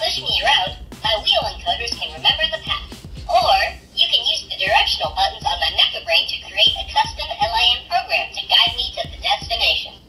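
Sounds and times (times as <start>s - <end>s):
robot synthetic babble: 0.0s - 9.9s.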